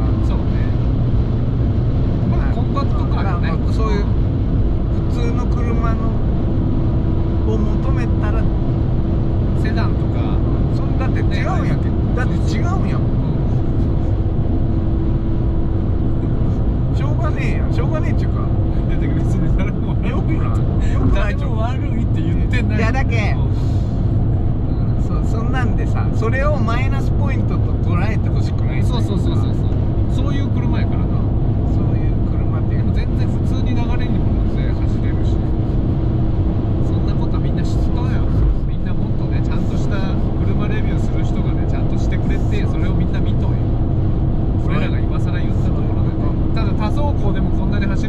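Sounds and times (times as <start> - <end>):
constant hum: 0.0 - 48.0
engine and tyre drone: 0.0 - 48.0.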